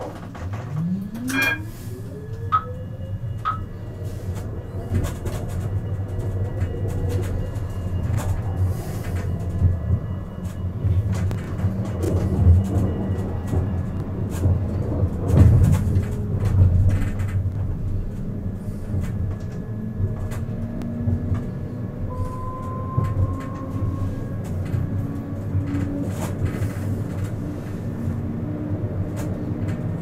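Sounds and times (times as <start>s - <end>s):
tram wheels rumbling on rails: 0.0s - 30.0s.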